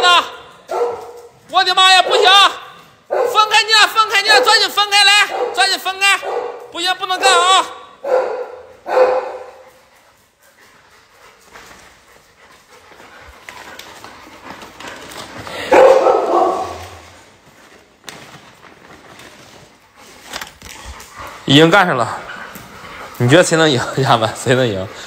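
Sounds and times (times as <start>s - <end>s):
dog barking: 0.7s - 1.3s, 2.0s - 3.5s, 4.1s - 9.6s, 15.6s - 17.0s.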